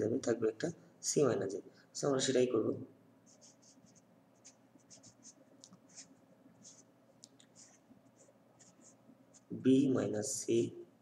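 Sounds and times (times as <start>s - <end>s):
marker pen writing on paper: 3.3s - 9.6s.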